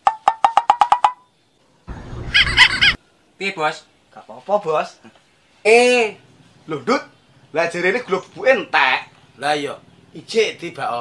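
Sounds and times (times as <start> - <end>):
loud noisy sound: 1.9 - 3.0.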